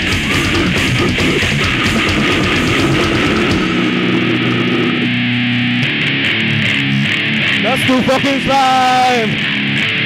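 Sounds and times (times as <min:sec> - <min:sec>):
metal drumming: 0:00.0 - 0:06.0
distorted electric guitars: 0:00.0 - 0:10.0.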